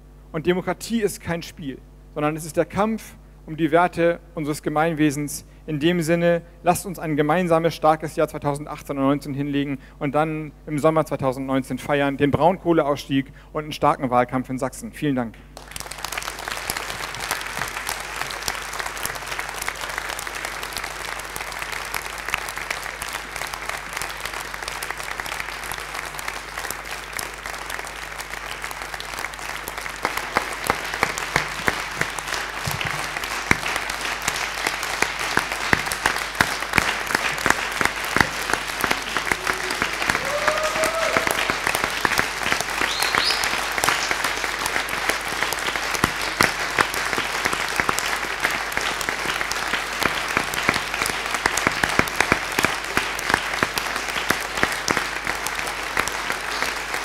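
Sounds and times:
audience applause: 15.6s - 57.0s
short rising cheers: 38.9s - 41.9s.

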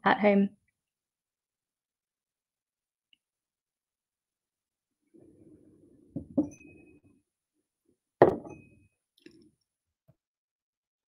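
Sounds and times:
thump on a desk: 8.2s - 8.6s.

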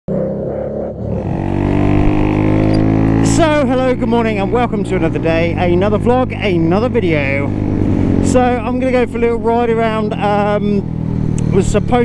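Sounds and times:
motorcycle engine droning: 0.1s - 12.0s
man talking: 3.2s - 7.5s, 8.2s - 10.8s, 11.4s - 12.0s.

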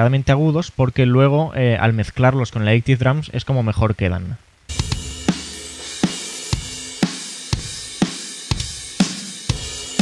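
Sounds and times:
cymbal wash: 4.7s - 10.0s
metal drum beat: 4.7s - 10.0s.

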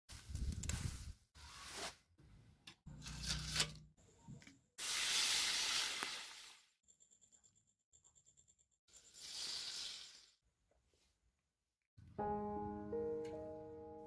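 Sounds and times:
leaves rustling and tearing: 3.0s - 3.8s.

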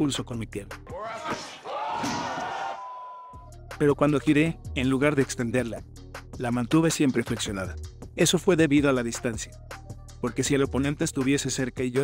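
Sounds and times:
men shouting: 0.9s - 3.3s.

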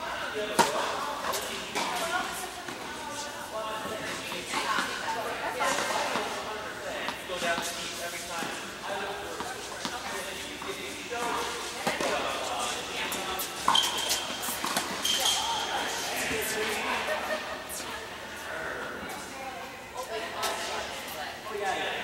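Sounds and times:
voices in background: 0.0s - 22.0s
tennis balls hit with rackets: 0.5s - 2.9s, 9.3s - 16.5s
tennis balls bouncing on hard court: 9.3s - 15.7s.

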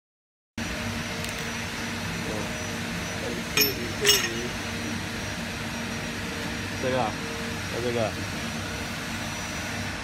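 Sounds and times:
machine hum: 0.6s - 10.0s
metallic clink: 3.6s - 4.6s.

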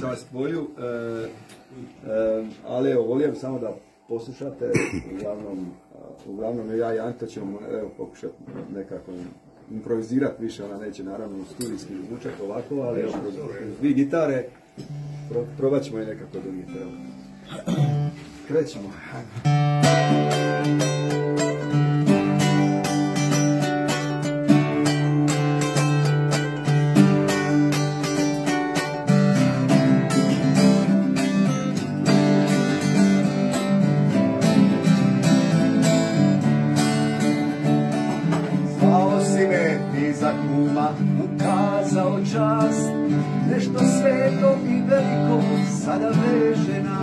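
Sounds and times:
acoustic guitars strumming: 4.6s - 47.0s.

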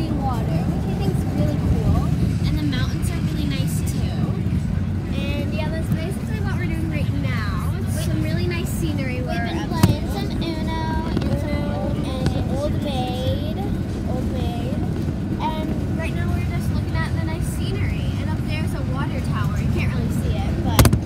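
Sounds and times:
indistinct voices: 0.0s - 21.0s
road and engine rumble: 0.0s - 21.0s.

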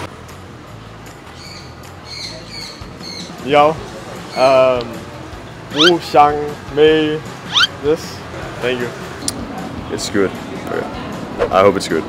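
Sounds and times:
small birds chirping: 5.7s - 6.0s, 7.5s - 7.8s.

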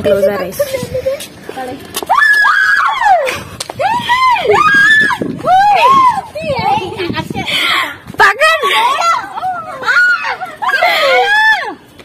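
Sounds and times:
girls shrieking and yelling: 2.0s - 11.9s.

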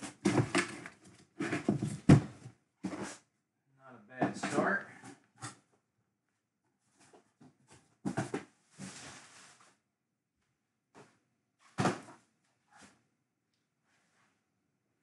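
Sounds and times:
boxes knocking: 0.0s - 3.1s.

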